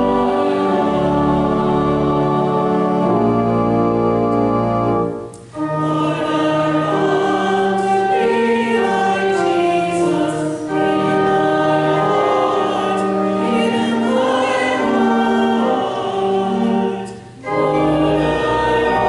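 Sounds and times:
church choir singing: 0.0s - 19.0s
sustained organ chord: 0.0s - 19.0s.

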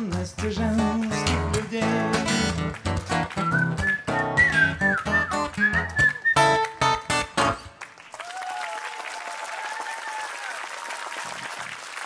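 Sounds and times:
acoustic guitar strumming: 0.0s - 7.7s
man whistling a tune: 3.2s - 7.0s.

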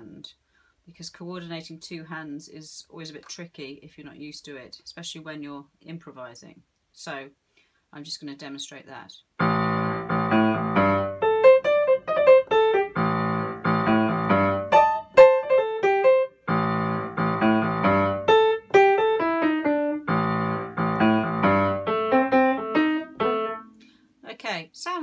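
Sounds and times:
piano bass riff: 9.4s - 23.8s
improvised piano phrases: 9.4s - 23.9s.

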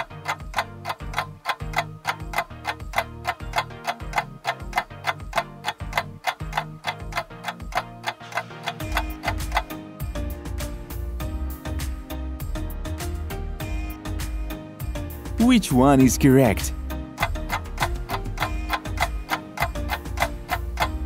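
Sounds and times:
clock ticking: 0.0s - 11.0s, 13.9s - 21.0s
background music with low notes: 0.0s - 21.0s.

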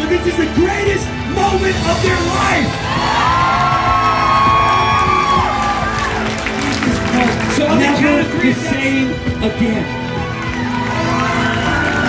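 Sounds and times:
background music: 0.0s - 12.0s
crowd cheering: 2.6s - 8.5s, 9.6s - 12.0s.

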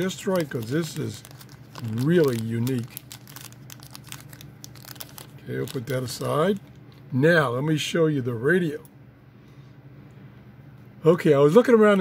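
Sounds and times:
plastic bag crinkling: 0.0s - 7.0s.

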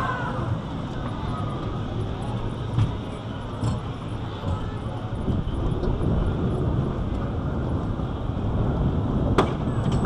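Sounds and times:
wheels rumbling on wooden track: 0.0s - 10.0s
sharp clack of track: 9.3s - 10.0s.

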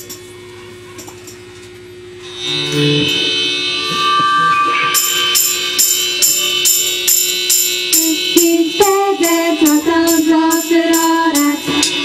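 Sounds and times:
amplifier hum: 0.0s - 12.0s
live band playing a chord: 2.2s - 12.0s.

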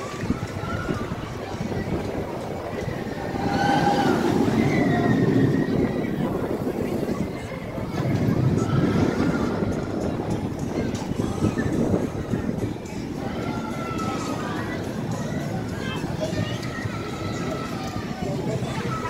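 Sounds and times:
distant voices: 0.0s - 19.0s
roller coaster on track: 0.0s - 19.0s.

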